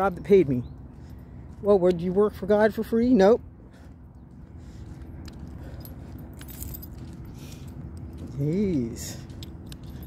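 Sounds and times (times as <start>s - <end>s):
steady low rumble: 0.0s - 10.0s
metallic jingling and clinking: 5.1s - 10.0s.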